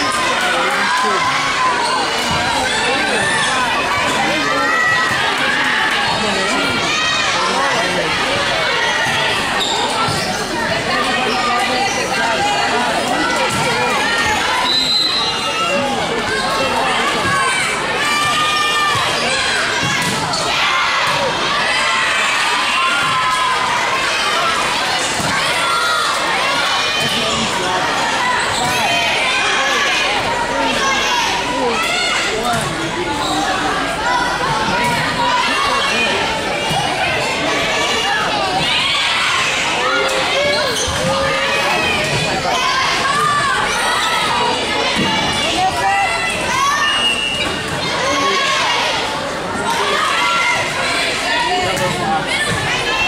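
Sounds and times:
girls shouting and cheering: 0.0s - 32.4s, 33.8s - 53.0s.

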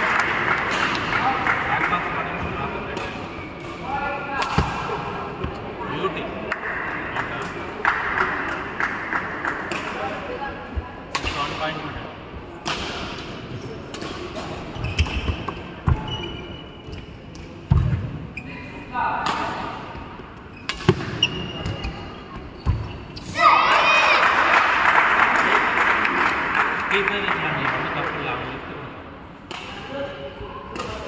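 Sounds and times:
spectators cheering and shouting: 23.2s - 26.1s.

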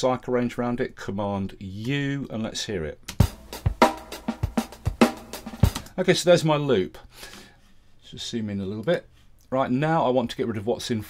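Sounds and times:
kick drum thumps: 3.2s - 5.9s
snare and cymbal hits: 3.2s - 6.0s.

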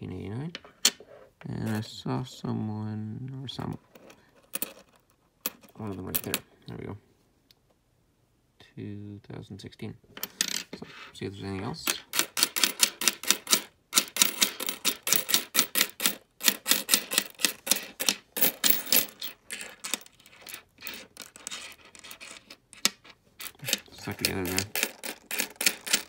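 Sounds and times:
coins clinking on a tabletop: 4.0s - 6.4s, 10.2s - 10.9s, 11.9s - 26.0s.

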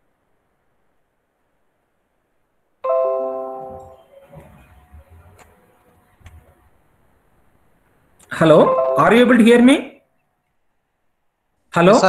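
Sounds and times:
marimba-like notification chime: 8.6s - 9.3s.

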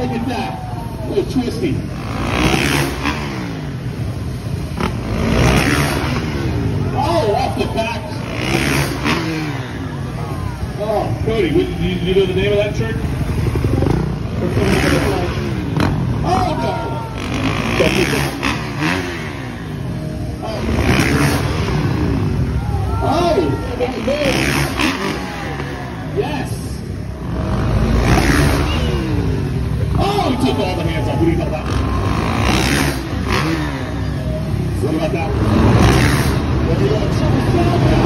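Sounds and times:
dirt bike engines revving: 0.0s - 38.0s
voices: 0.0s - 38.0s.

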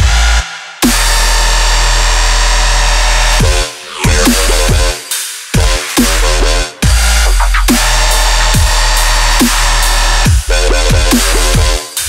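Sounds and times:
deep sub-bass: 0.0s - 12.0s
distorted buzzing synth bass: 0.0s - 12.0s.

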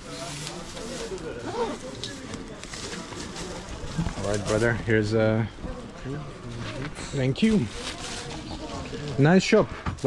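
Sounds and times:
market street bustle: 0.0s - 10.0s.

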